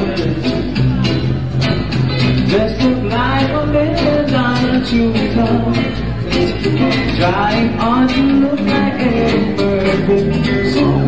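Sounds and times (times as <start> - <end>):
reggae band playing: 0.0 - 11.0
person singing: 2.4 - 11.0.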